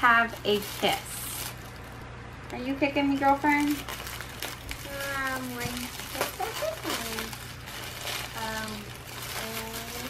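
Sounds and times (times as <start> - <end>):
tissue paper rustling: 0.0 - 2.0, 3.2 - 10.0.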